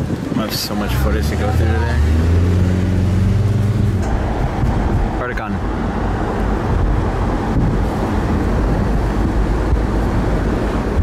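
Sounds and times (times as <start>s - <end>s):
low engine hum: 0.0s - 11.0s
road and wind rush: 0.0s - 11.0s.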